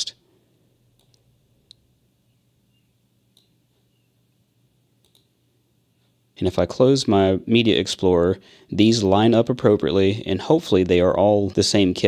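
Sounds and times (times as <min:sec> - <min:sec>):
computer mouse clicks: 0:00.9 - 0:01.8, 0:03.3 - 0:03.6, 0:05.0 - 0:05.3.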